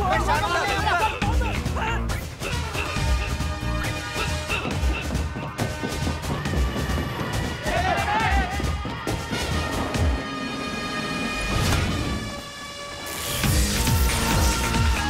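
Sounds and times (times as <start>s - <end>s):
action film score: 0.0s - 15.0s
voices shouting: 7.6s - 8.7s.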